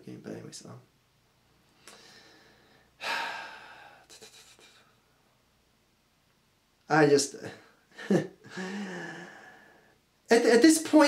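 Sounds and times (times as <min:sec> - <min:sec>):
man sighing: 0:03.0 - 0:04.9, 0:08.4 - 0:09.8.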